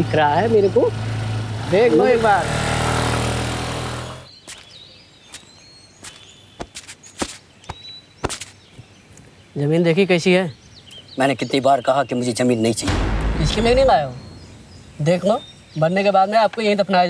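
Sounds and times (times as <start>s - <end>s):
motor scooter engine running: 0.0s - 4.3s
road noise: 0.0s - 9.6s, 10.5s - 17.0s
faint high bird chirps: 4.2s - 17.0s.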